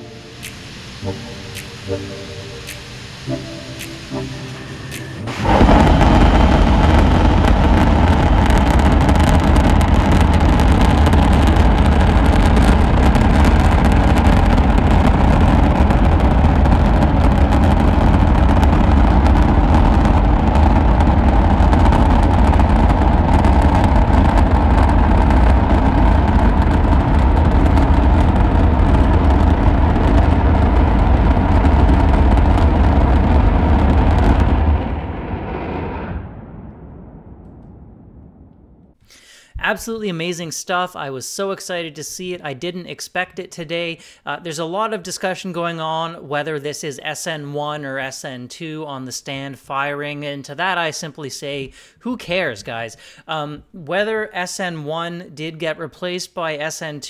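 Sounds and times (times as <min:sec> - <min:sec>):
rocket engine roaring: 0:00.0 - 0:39.0.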